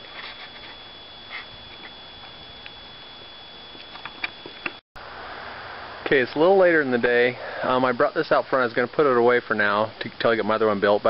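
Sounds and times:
background hiss: 0:00.0 - 0:11.0
thin high whine: 0:00.0 - 0:11.0.

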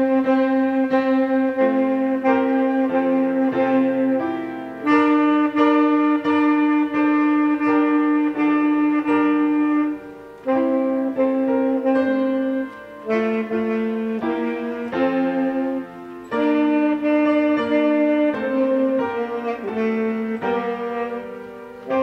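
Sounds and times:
piano accompaniment: 0:00.0 - 0:22.0
tenor saxophone melody: 0:00.0 - 0:22.0.

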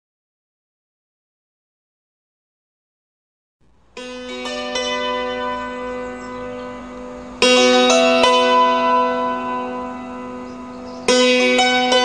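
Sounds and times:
string instrument chord ringing: 0:03.9 - 0:12.0.

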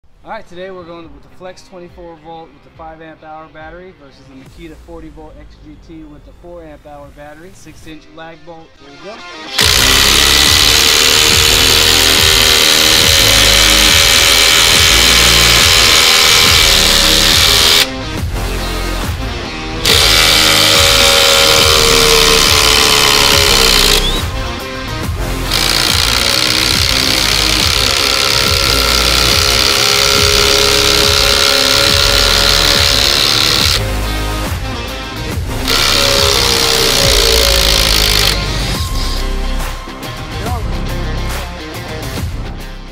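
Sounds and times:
impact driver hammering bolts into timber: 0:09.6 - 0:17.9, 0:19.8 - 0:24.2, 0:25.5 - 0:33.8, 0:35.7 - 0:38.4.

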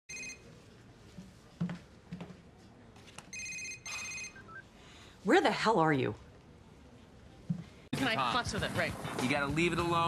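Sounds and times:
mobile phone ringtone: 0:00.1 - 0:00.6, 0:03.3 - 0:04.6.

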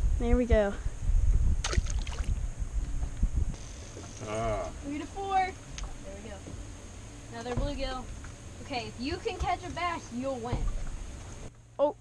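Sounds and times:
wind buffeting microphone: 0:00.0 - 0:11.5.

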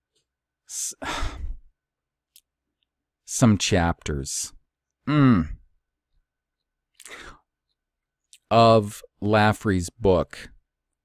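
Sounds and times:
man sighing: 0:00.7 - 0:01.7, 0:05.1 - 0:05.6.

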